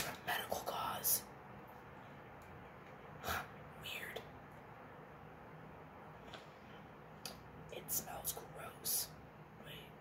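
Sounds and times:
woman whispering: 0.0 - 1.4, 3.2 - 4.5, 7.7 - 10.0.

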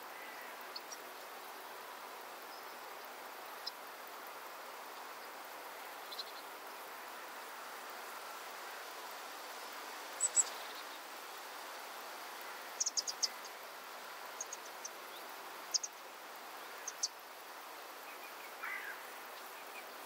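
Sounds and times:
insects humming: 0.0 - 20.0.

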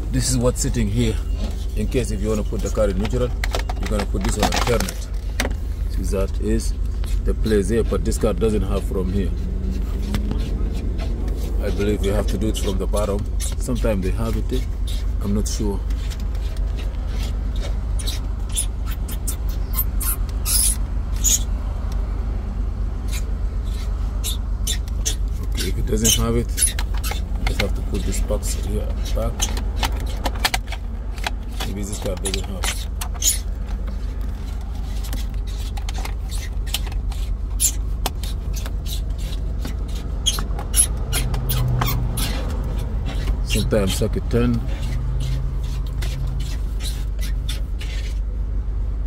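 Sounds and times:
steady low rumble: 0.0 - 49.0
clicks and scrapes on plastic trim: 24.7 - 48.2.

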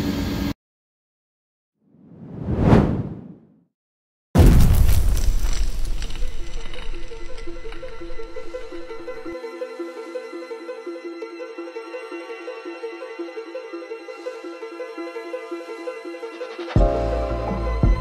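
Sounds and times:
whoosh: 2.0 - 3.5
sudden loud hit: 4.4 - 9.3.

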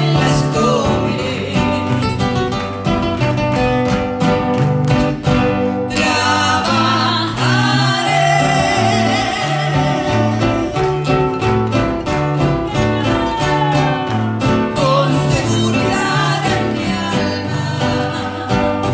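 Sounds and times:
man and woman singing a hymn: 0.0 - 2.2, 5.9 - 11.0, 13.0 - 18.9
acoustic guitars strumming: 0.0 - 18.9.

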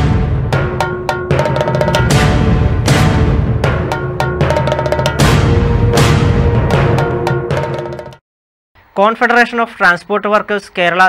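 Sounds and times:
drums and metal percussion: 0.0 - 8.2.

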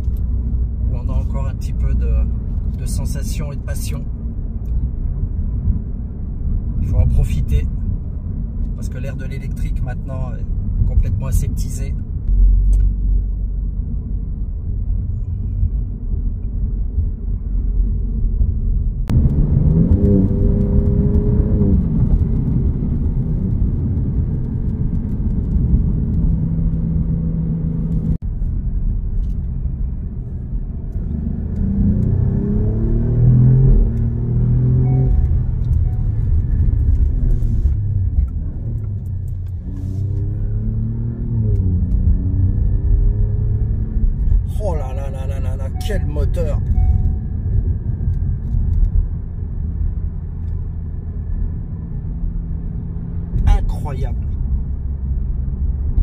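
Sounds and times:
steady low rumble: 0.0 - 56.0
car engine revving: 19.1 - 28.2, 30.9 - 47.3.

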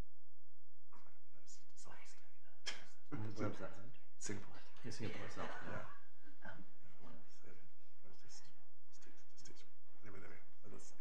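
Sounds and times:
steady low hum: 0.9 - 11.0.

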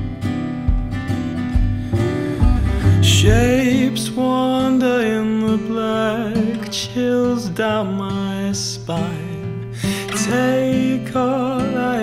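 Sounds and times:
folk-rock band music: 0.0 - 3.8
person singing wordlessly: 2.0 - 12.0.

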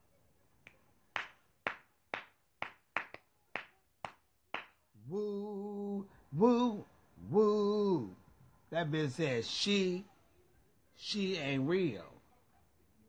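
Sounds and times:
man singing a held note: 5.1 - 8.2.

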